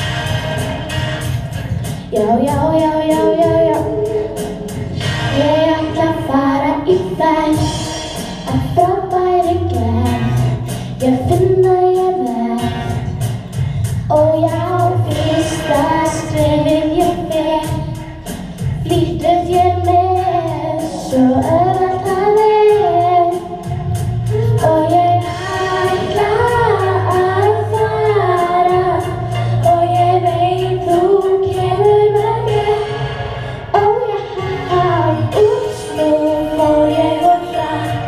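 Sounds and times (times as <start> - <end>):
instrumental accompaniment: 0.0 - 38.0
children singing: 24.3 - 38.0.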